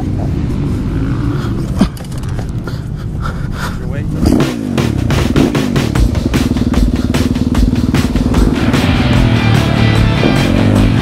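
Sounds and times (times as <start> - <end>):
dirt bike engine revving: 4.1 - 11.0
music: 4.5 - 11.0.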